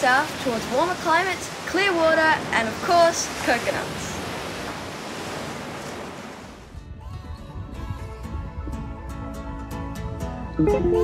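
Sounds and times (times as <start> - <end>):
ocean surf breaking: 0.0 - 6.7
music: 6.8 - 11.0.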